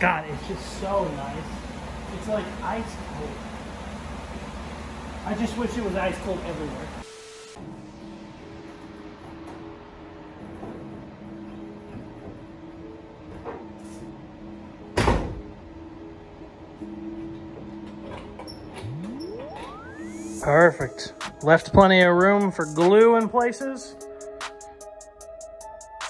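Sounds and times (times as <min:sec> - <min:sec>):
music: 0:00.0 - 0:03.3, 0:05.3 - 0:26.0
air conditioner humming: 0:00.0 - 0:11.8
rising swoosh: 0:18.8 - 0:20.8.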